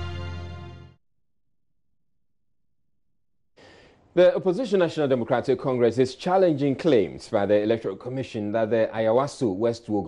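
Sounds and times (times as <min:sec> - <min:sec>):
man breathing in: 0:03.6 - 0:04.1
faint microphone hiss: 0:03.6 - 0:10.0.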